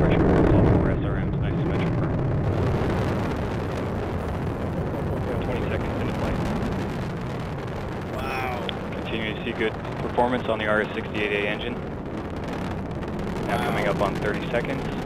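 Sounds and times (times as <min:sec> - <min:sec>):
rocket engines rumbling: 0:00.0 - 0:15.0.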